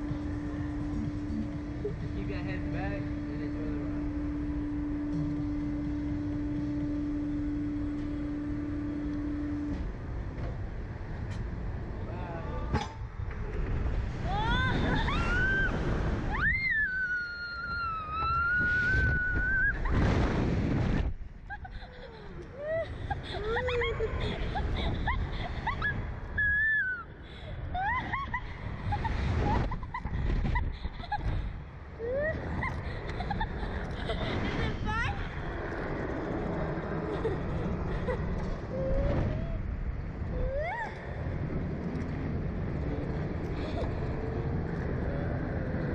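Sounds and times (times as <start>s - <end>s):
wind buffeting microphone: 13.0s - 21.7s, 27.1s - 45.9s
yelps and laughing cries: 21.5s - 27.0s, 27.7s - 31.4s, 32.0s - 35.4s, 40.4s - 41.2s
child squealing: 40.4s - 41.0s.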